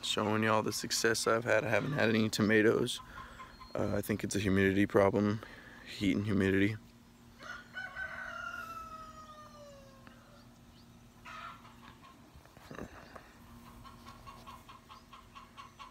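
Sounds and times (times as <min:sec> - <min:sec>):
bird calling: 0:01.6 - 0:04.4, 0:07.4 - 0:15.9.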